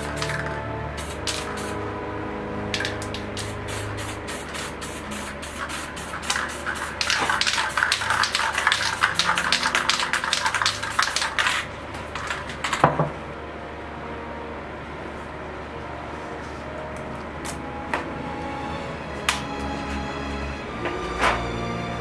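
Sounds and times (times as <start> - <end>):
spray paint can hissing: 0.0 - 1.8, 2.8 - 11.6
background music: 0.0 - 22.0.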